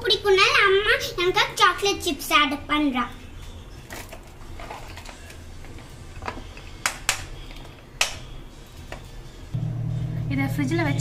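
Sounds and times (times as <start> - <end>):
refrigerator humming: 3.7 - 11.0.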